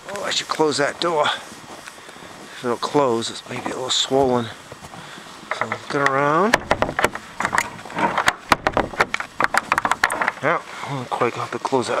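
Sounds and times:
footsteps crunching in snow: 0:00.0 - 0:05.5.

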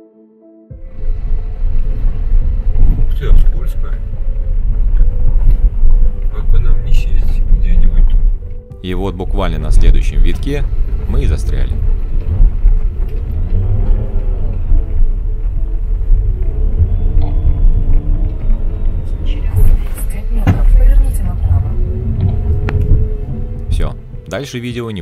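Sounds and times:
car engine labouring: 0:00.7 - 0:25.0
voices: 0:17.2 - 0:25.0.

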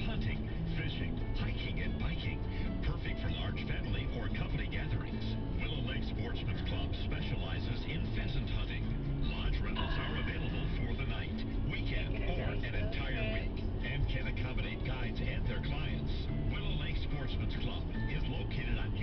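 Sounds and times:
muffled radio talk: 0:00.0 - 0:19.0
music playing in car: 0:00.0 - 0:19.0
road and engine rumble: 0:00.0 - 0:19.0.

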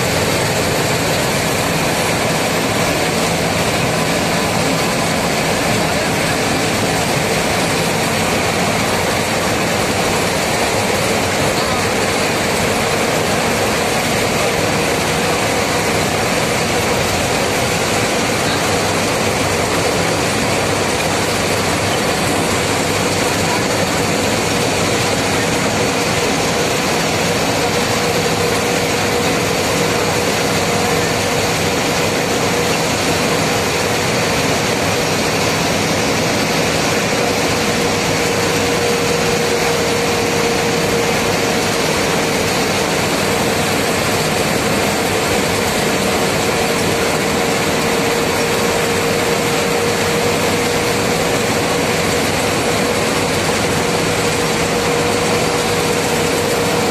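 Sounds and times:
vehicle engine and road noise: 0:00.0 - 0:56.9.

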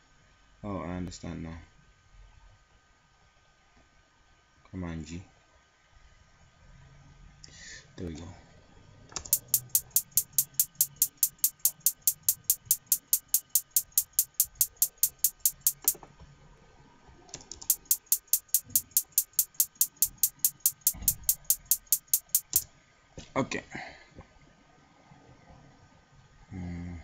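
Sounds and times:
looping hi-hat-like percussion: 0:09.3 - 0:16.0, 0:17.6 - 0:22.6.

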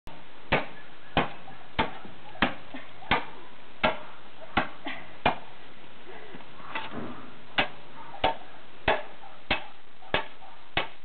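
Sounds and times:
spade chopping frozen ground: 0:00.5 - 0:04.0, 0:07.6 - 0:11.0.

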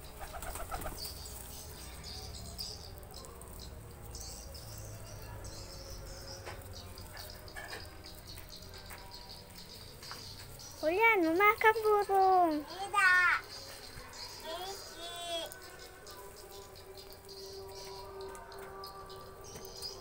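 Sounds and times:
pigeons flapping wings: 0:00.0 - 0:01.2
pigeons cooing: 0:00.0 - 0:01.4
small birds chirping: 0:00.0 - 0:20.0.

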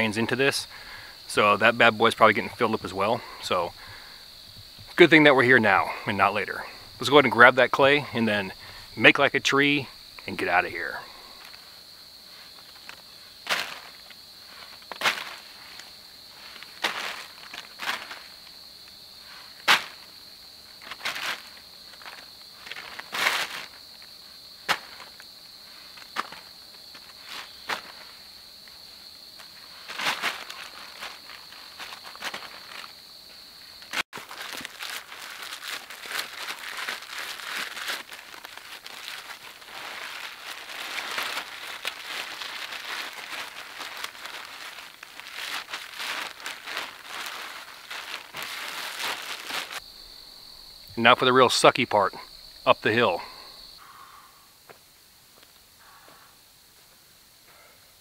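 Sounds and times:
high insect buzz: 0:00.0 - 0:56.6
plastic bag crinkling: 0:33.9 - 0:49.8.

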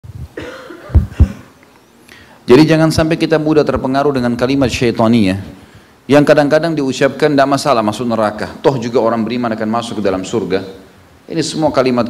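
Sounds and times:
man coughing: 0:00.4 - 0:01.6.

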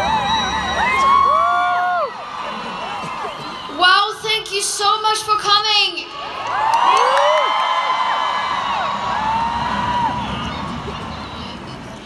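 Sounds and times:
crowd cheering and whooping: 0:00.0 - 0:04.2, 0:06.1 - 0:12.0.

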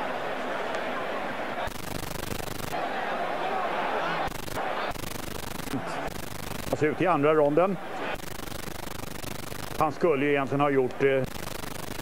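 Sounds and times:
crowd cheering: 0:00.0 - 0:09.0, 0:09.8 - 0:11.3.

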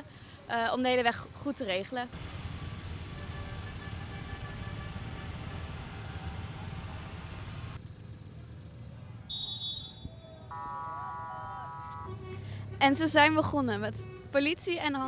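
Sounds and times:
engines idling low rumble: 0:00.0 - 0:15.0
steady horn-like tone: 0:10.5 - 0:13.2.

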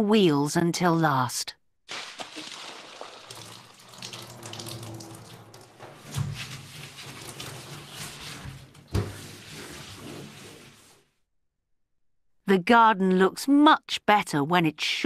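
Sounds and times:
water running and splashing: 0:01.9 - 0:11.0.

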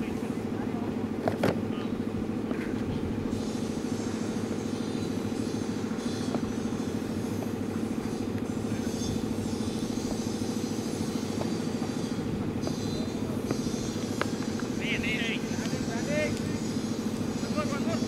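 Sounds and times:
steady low drone: 0:00.0 - 0:18.0.

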